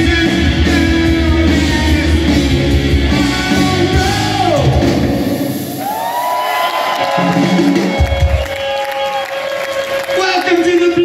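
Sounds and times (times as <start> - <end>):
bass guitar: 0.0 - 5.8
distorted electric guitars: 0.0 - 6.0
drums: 0.0 - 10.7.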